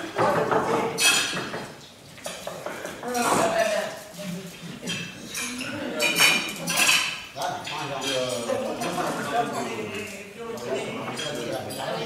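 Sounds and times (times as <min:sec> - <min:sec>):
chatter of diners: 0:00.0 - 0:12.0
cutlery clinking on plates: 0:00.0 - 0:12.0.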